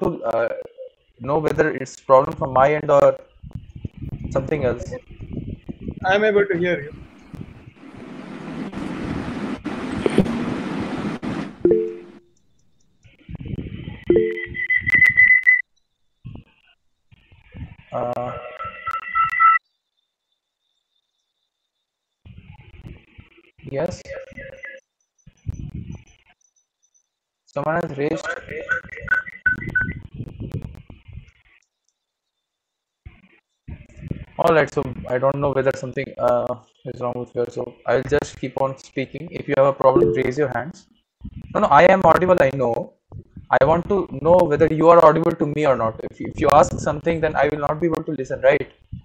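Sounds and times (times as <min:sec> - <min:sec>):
garbled microphone hiss: 0:00.0 - 0:18.6, 0:19.7 - 0:26.2, 0:27.1 - 0:49.0
short low tones: 0:11.6 - 0:12.3, 0:14.1 - 0:14.6, 0:40.0 - 0:40.6
two-pitch notification beeps: 0:11.7 - 0:12.3, 0:14.1 - 0:14.7, 0:40.0 - 0:40.4.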